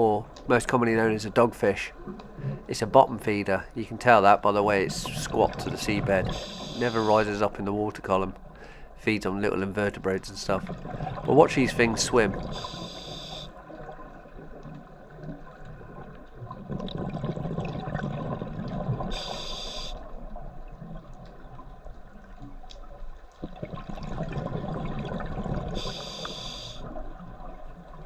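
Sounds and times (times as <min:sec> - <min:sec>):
exhaled bubbles rumbling: 0:00.0 - 0:08.5, 0:09.2 - 0:28.0
regulator inhale hiss: 0:06.3 - 0:07.2, 0:12.4 - 0:13.6, 0:19.1 - 0:20.1, 0:25.8 - 0:26.9.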